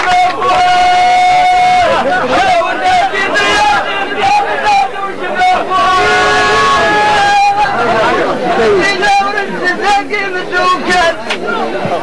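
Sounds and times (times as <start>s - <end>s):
group chatter: 0.0s - 12.0s.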